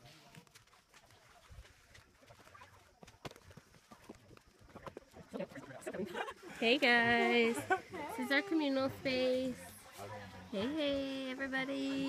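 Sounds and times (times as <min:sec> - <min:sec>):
footsteps on dirt path: 0:00.0 - 0:05.6.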